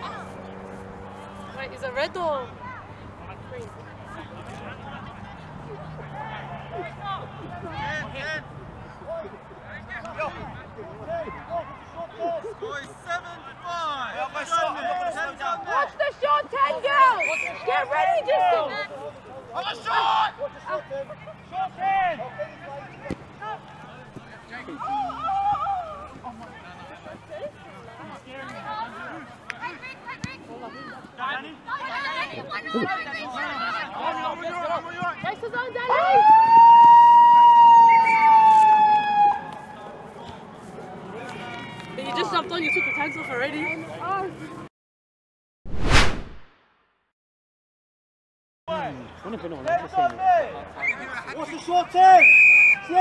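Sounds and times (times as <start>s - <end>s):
voices calling and chattering: 0.0s - 44.7s, 48.7s - 53.0s
loud shout: 24.8s - 26.1s.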